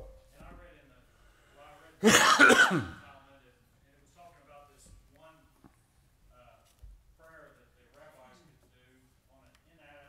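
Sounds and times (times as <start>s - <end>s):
man laughing: 2.0s - 2.8s.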